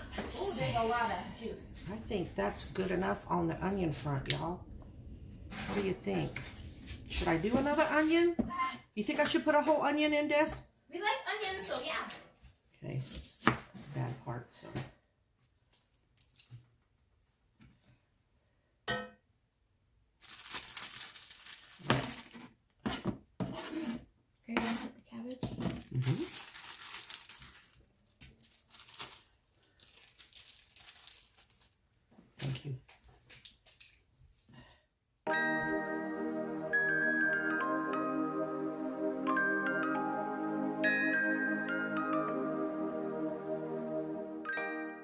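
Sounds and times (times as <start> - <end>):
plastic bag crinkling: 20.2 - 22.5, 25.7 - 32.0
plastic bag tearing: 20.2 - 22.5, 25.8 - 31.8.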